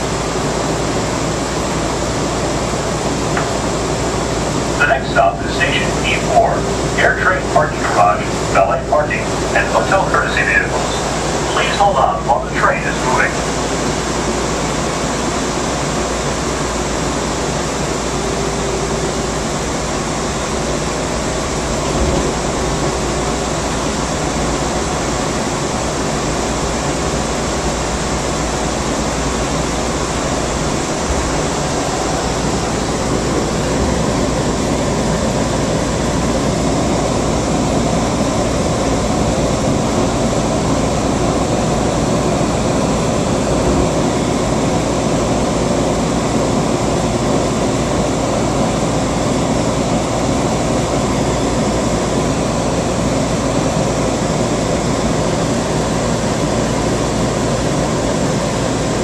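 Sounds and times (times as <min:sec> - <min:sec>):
train car running rush and hum: 0:00.0 - 0:59.0.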